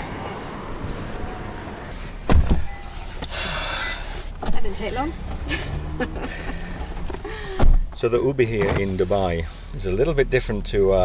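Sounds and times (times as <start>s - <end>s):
street traffic: 0.0s - 11.0s
car door shutting: 0.6s - 9.2s.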